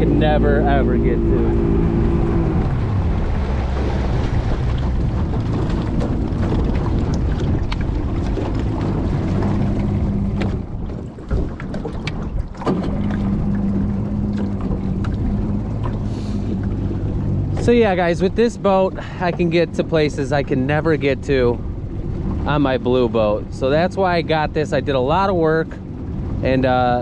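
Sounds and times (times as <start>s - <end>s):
outboard boat motor running: 0.0s - 27.0s.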